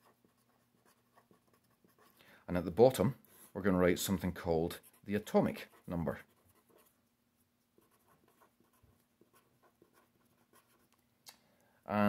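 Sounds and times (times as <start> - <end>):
pen scratching on paper: 0.0 - 2.2, 4.7 - 7.0, 7.6 - 11.0.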